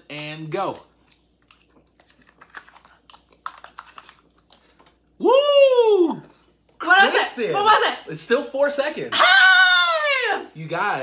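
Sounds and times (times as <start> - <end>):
wet mouth and swallowing sounds: 0.8 - 5.2.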